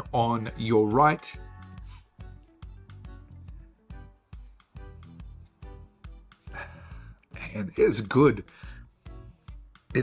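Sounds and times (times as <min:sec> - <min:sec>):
soft background music: 0:00.0 - 0:10.0
breathy sniff: 0:01.8 - 0:02.2.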